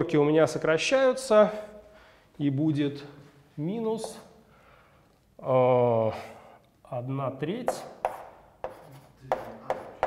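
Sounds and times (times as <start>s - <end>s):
chalk tapping on blackboard: 4.0s - 4.3s, 7.6s - 10.0s
chalk scratching on blackboard: 7.7s - 10.0s.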